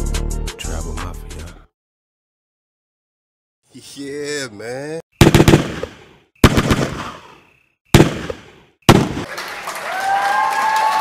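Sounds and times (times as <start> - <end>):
bursts of rapid cracking: 5.2 - 7.1, 8.0 - 9.4
crowd cheering and applauding: 9.2 - 11.0.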